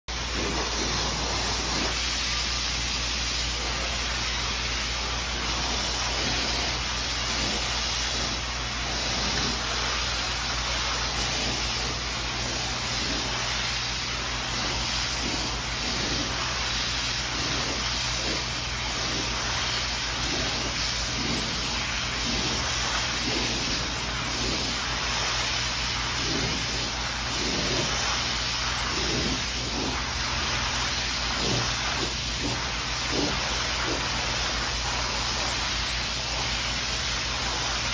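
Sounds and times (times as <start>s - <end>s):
water spraying from hose nozzle: 0.1s - 37.9s.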